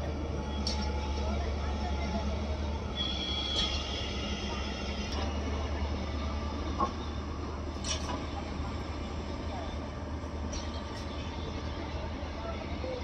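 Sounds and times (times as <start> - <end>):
excavator diesel engine droning: 0.0 - 13.0.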